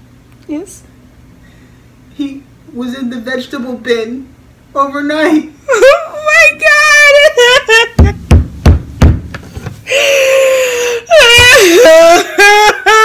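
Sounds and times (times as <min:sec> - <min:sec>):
girl fake crying: 0:05.6 - 0:08.2, 0:09.9 - 0:13.0
dull thumps: 0:08.0 - 0:09.8.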